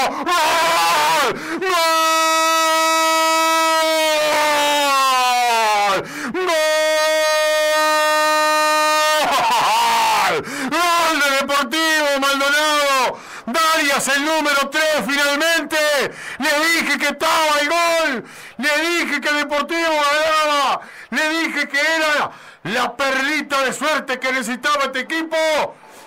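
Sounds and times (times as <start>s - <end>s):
excited shouted words: 0.0s - 13.1s
commentator shouting goal cry: 0.0s - 25.7s.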